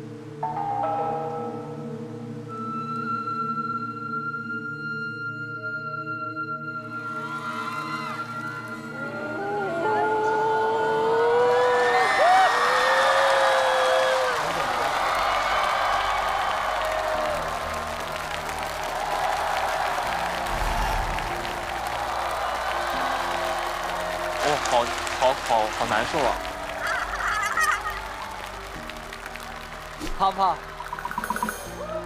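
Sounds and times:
low dark background music: 0.0 - 32.0
cheering and applause: 6.9 - 9.1, 10.6 - 32.0
audience crying out in shock: 11.4 - 30.0.

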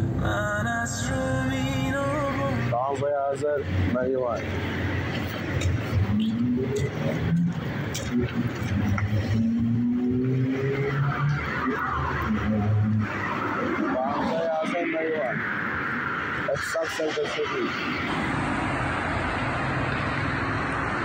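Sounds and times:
car engine: 0.0 - 21.0
road noise: 0.0 - 21.0.

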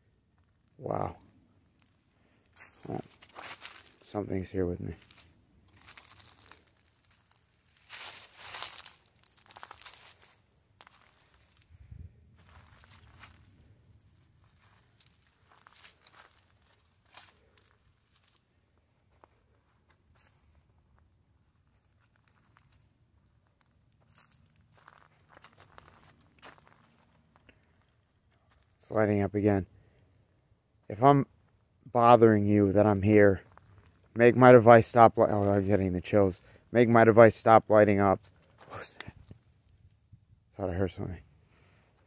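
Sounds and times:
footsteps on dry leaves: 2.5 - 4.2, 4.8 - 11.7, 12.3 - 18.4, 24.0 - 27.3.

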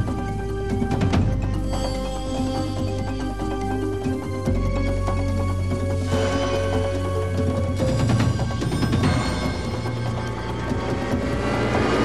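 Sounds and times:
synthesizer theme music: 0.0 - 12.0
rushing swell: 9.8 - 12.0.

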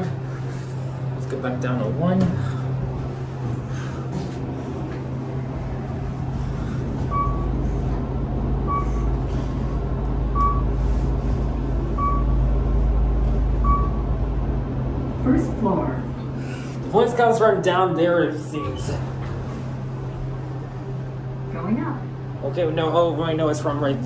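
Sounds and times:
elevator hum: 0.0 - 24.0
low rumble of elevator car: 0.0 - 24.0
short beeps: 7.1 - 7.5, 8.7 - 9.1, 10.3 - 10.7, 12.0 - 12.4.

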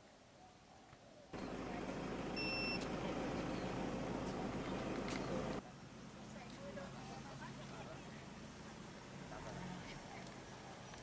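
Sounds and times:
outdoor gathering ambience: 0.0 - 11.0
high electronic beep: 2.4 - 2.8.

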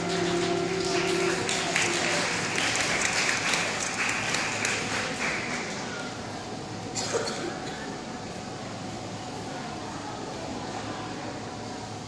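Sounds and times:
audience applauding: 0.0 - 6.2.

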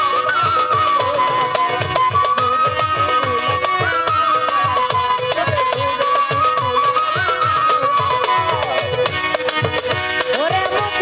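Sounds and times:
hand drums beating: 0.0 - 11.0.

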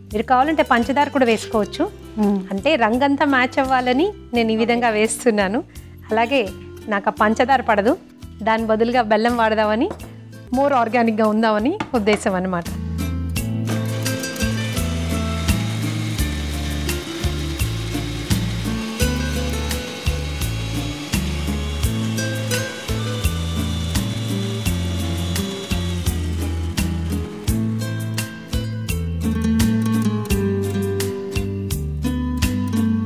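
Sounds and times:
mixer grinder whining: 13.6 - 29.1.

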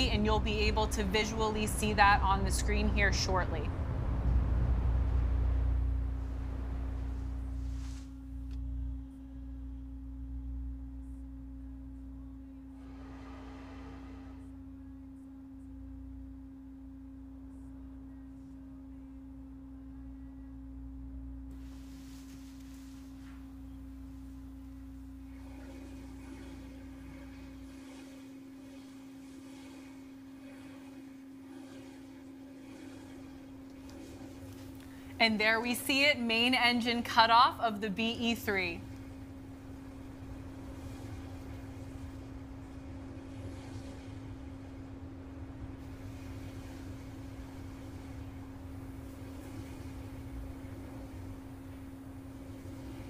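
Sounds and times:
distant rocket engine rumble: 0.0 - 15.1, 17.5 - 53.0
steady hum: 0.0 - 53.0.

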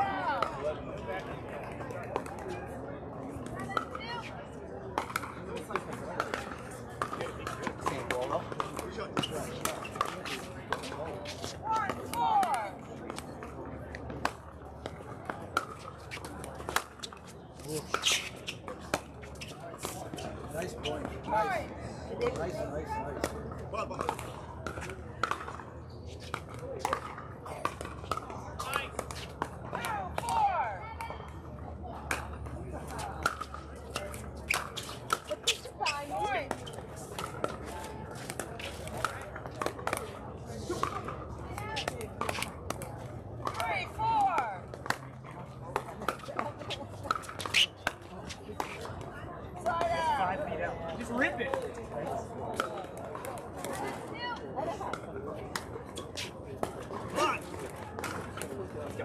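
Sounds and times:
people talking: 0.0 - 59.0.

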